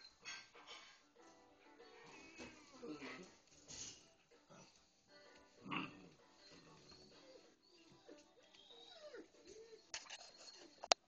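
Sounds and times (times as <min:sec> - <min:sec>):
puppies crying: 0:05.7 - 0:10.0.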